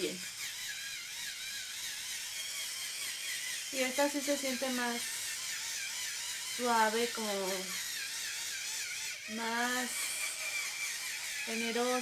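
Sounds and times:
facial brush motor whirring: 0:00.0 - 0:12.0.

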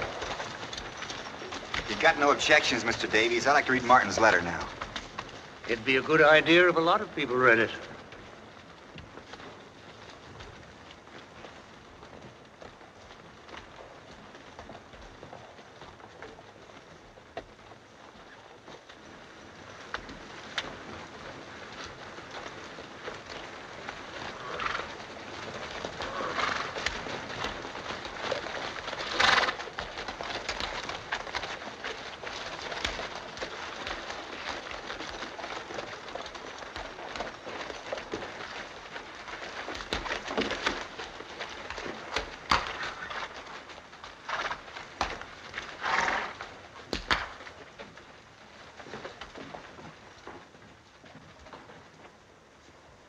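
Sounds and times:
horse hoofbeats on dirt: 0:00.0 - 0:53.0.

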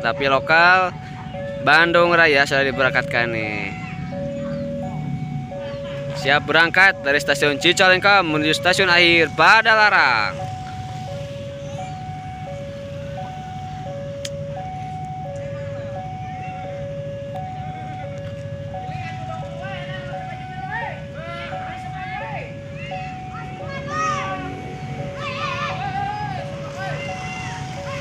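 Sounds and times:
level crossing two-tone alarm: 0:00.0 - 0:28.0
low engine hum: 0:00.0 - 0:28.0.

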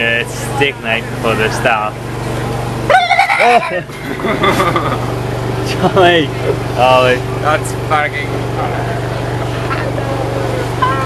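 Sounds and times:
steady low hum: 0:00.0 - 0:11.0
people exclaiming: 0:02.8 - 0:05.0.

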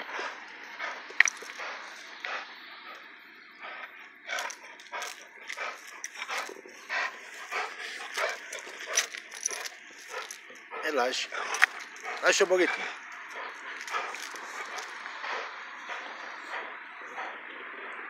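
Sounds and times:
dog growling: 0:00.0 - 0:18.0.

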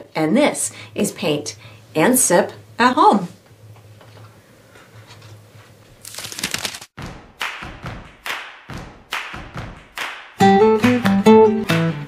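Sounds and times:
acoustic guitar strumming: 0:10.4 - 0:12.0.

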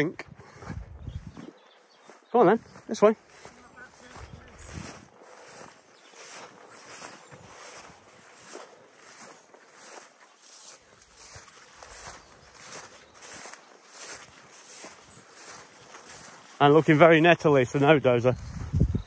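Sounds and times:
footsteps through long grass: 0:00.4 - 0:19.0.

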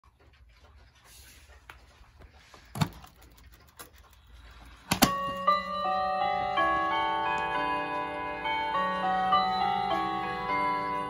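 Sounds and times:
clock chime melody: 0:05.0 - 0:11.0.

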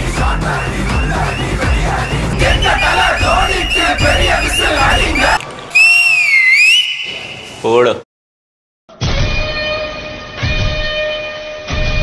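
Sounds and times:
music with heavy bass: 0:00.0 - 0:05.4
crowd screaming and cheering: 0:00.0 - 0:07.4
loud gliding tone: 0:00.6 - 0:05.4.

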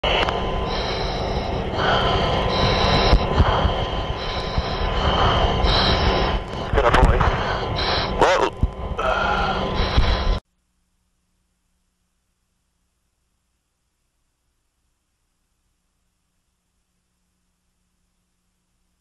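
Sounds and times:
loud steady roar of noise: 0:00.0 - 0:10.4
electrical hum: 0:00.0 - 0:19.0
radio voice chatter: 0:05.8 - 0:10.2.

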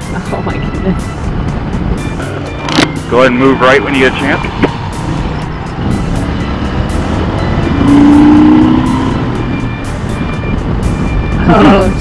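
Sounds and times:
wind noise on microphone: 0:04.4 - 0:12.0.

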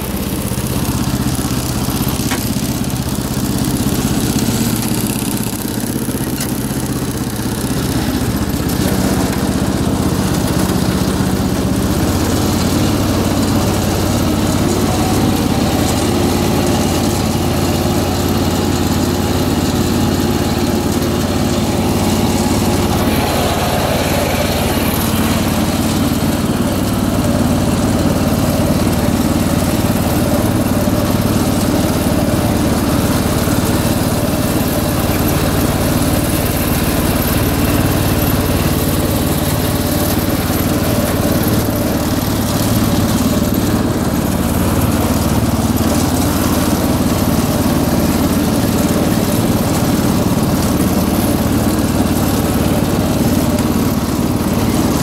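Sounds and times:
garden tractor engine running: 0:00.0 - 0:55.0.

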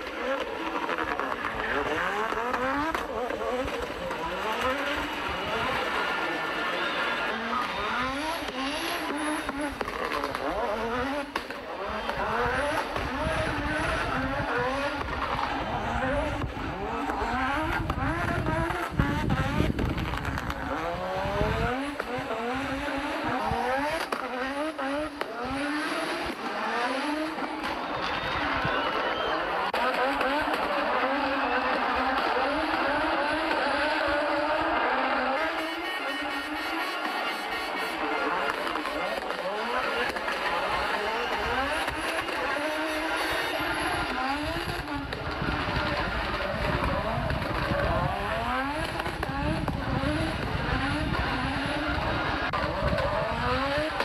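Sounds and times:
rally car engine revving: 0:00.0 - 0:54.0.

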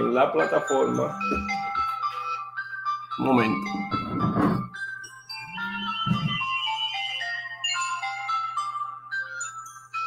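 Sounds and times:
phone ringtone electronic melody: 0:00.0 - 0:10.0.

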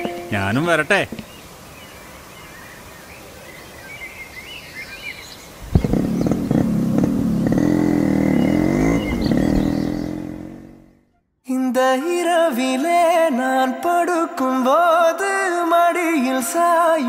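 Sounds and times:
birds chirping: 0:00.0 - 0:11.0
motorcycle engine revving: 0:05.6 - 0:11.1.

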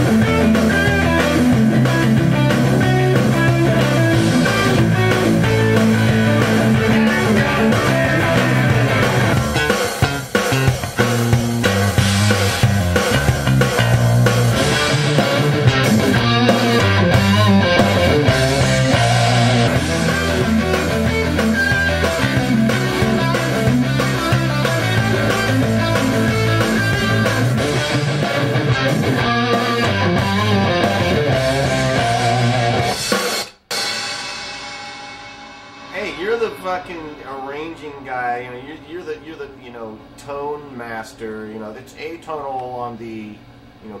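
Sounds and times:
rock music: 0:00.0 - 0:39.6
man talking: 0:35.9 - 0:44.0.

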